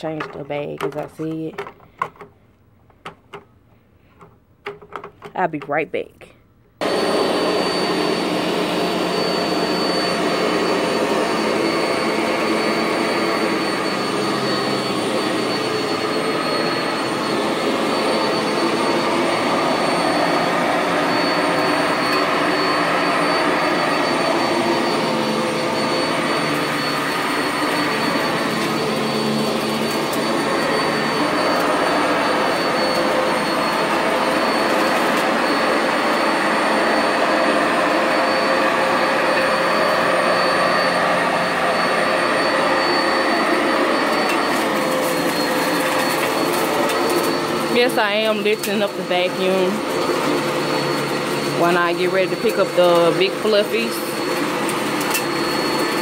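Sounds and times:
upright vacuum cleaner running: 6.8 - 56.0.

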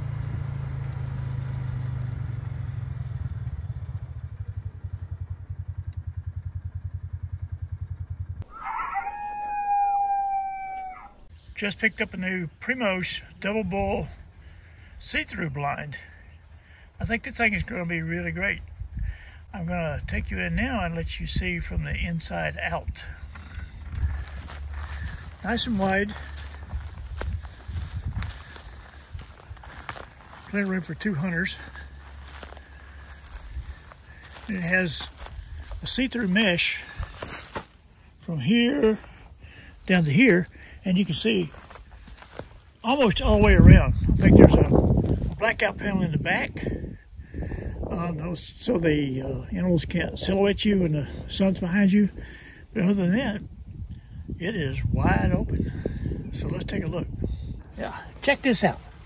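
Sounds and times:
steady low rumble: 1.6 - 8.6, 11.1 - 59.0
rooster crowing: 8.5 - 11.3
low motor-like hum: 21.0 - 46.9
footsteps through grass: 23.3 - 38.2, 38.8 - 46.0, 57.7 - 59.0.

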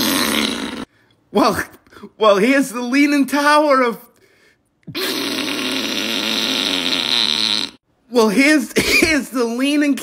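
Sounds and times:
fart sound: 0.0 - 0.9, 4.9 - 7.8.

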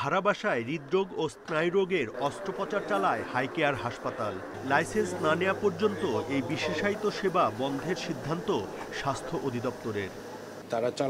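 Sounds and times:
indistinct voices talking: 0.0 - 10.6.

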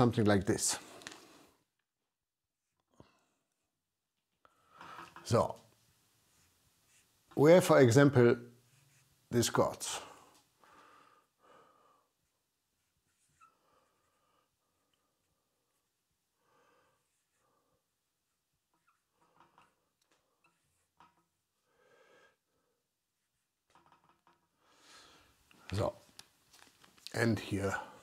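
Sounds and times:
marker writing on flip chart: 6.3 - 7.4
soft breathing: 9.9 - 23.5, 24.5 - 25.8.

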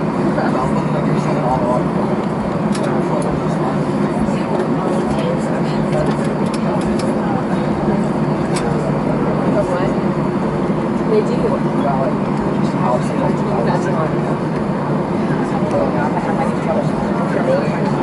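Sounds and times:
jet engine and airflow hum: 0.0 - 18.0
passengers talking indistinctly: 0.0 - 18.0.

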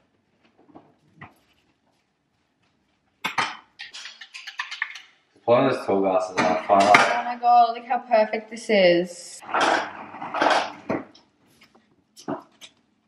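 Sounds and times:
cutlery and crockery clattering: 3.2 - 5.1, 6.4 - 7.2, 9.4 - 11.2.

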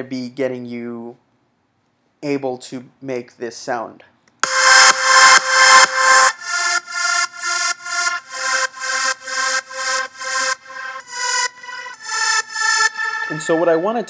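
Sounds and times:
pulsing synth chords: 4.4 - 14.0.

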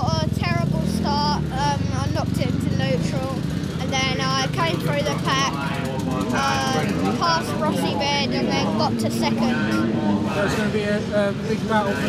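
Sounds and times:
motocross bike engines droning: 0.0 - 12.0.

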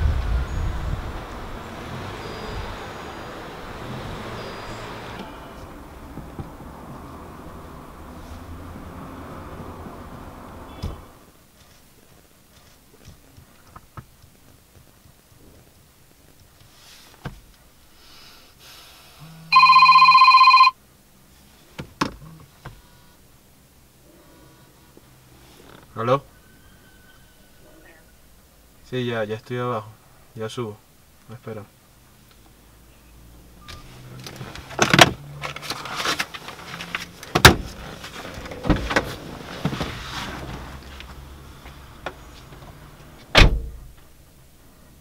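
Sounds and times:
smartphone ringing: 19.5 - 20.8
rustling: 24.0 - 28.8, 33.8 - 44.2
car door clunks and knocks: 37.3 - 37.8, 38.4 - 40.6, 42.0 - 44.0.

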